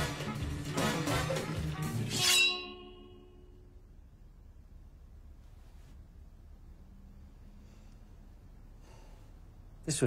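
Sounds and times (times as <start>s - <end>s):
music: 0.0s - 2.4s
glassy crash ringing: 2.0s - 3.6s.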